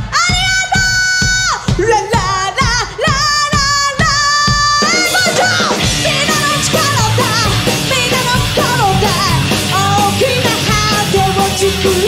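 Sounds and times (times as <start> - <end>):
steady drum beat: 0.0 - 12.0
woman singing: 0.0 - 12.0
electric guitars: 5.0 - 12.0.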